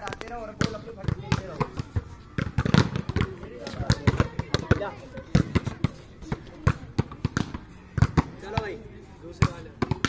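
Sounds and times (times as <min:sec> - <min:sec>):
volleyballs smacking and bouncing: 0:00.0 - 0:10.0.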